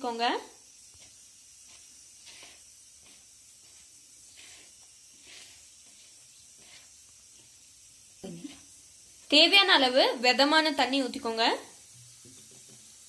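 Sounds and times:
fingers swishing dry flour: 0.0 - 9.4
low background hiss: 5.8 - 13.0.

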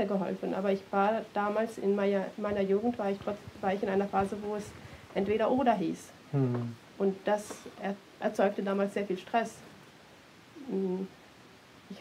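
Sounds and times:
person humming mhm: 6.3 - 6.8, 10.6 - 11.1.

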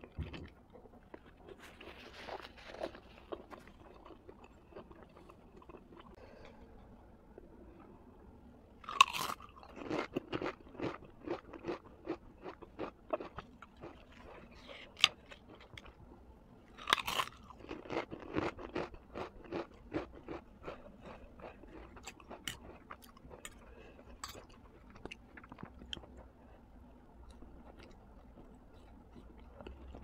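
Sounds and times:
chewing noodles: 0.0 - 6.2, 16.8 - 26.3.

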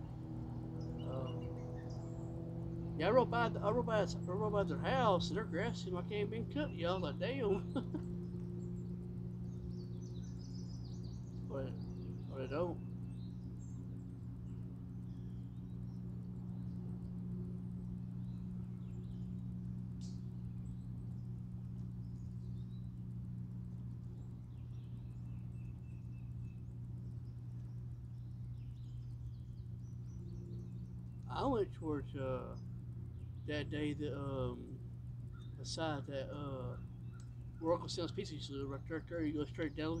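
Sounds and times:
faint bird chirps: 0.0 - 40.0
steady low hum: 0.0 - 40.0
brief human voice: 1.1 - 1.4.

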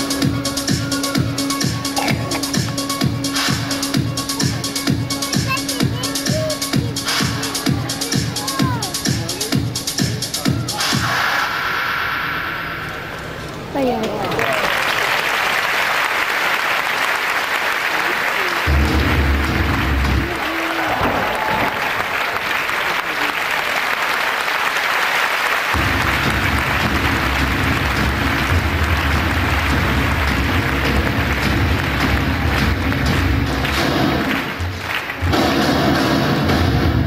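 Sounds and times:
music with deep beat: 0.0 - 11.2, 18.7 - 20.4, 25.8 - 37.0
audience applauding: 14.2 - 36.3.

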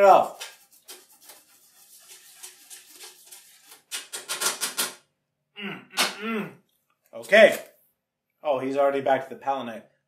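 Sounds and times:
scratchy brush strokes: 0.0 - 3.9
paintbrush rubbing: 0.0 - 4.5.

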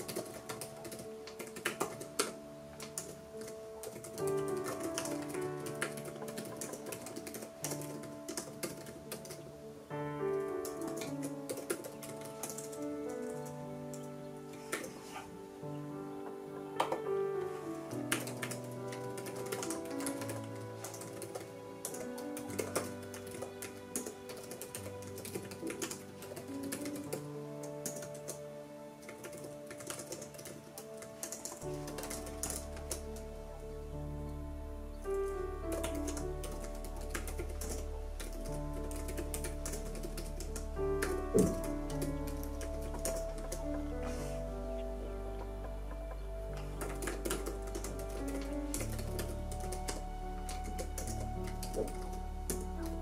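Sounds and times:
laptop keyboard typing: 0.0 - 9.4, 10.6 - 14.0, 18.0 - 27.2, 27.8 - 28.4, 29.0 - 33.1, 35.7 - 44.2, 46.5 - 53.0
soft background piano music: 0.0 - 53.0.

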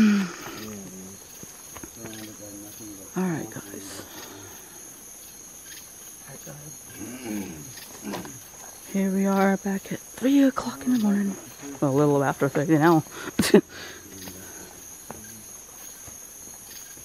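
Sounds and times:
night insects chirping: 0.0 - 17.0.

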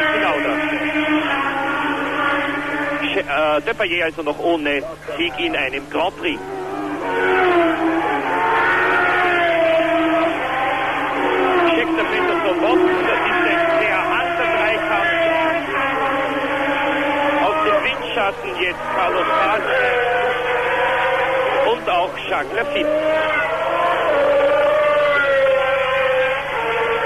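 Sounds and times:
race car engines passing: 0.0 - 27.0.

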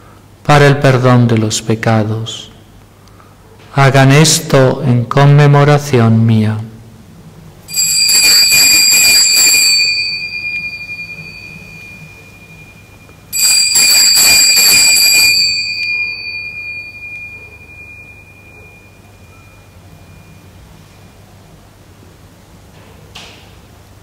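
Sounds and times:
altar bells ringing: 7.7 - 21.2.

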